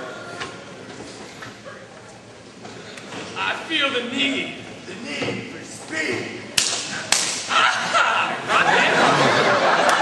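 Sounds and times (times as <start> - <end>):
crowd talking and laughing: 0.0 - 3.3, 6.9 - 10.0
sharp cracks: 6.6 - 7.5.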